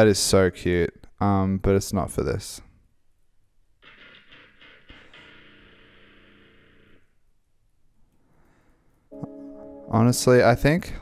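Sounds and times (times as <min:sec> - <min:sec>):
faint music from speakers: 0:09.1 - 0:11.0.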